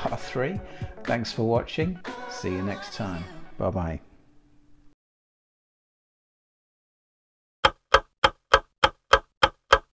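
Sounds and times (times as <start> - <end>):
clock ticking: 7.6 - 9.9.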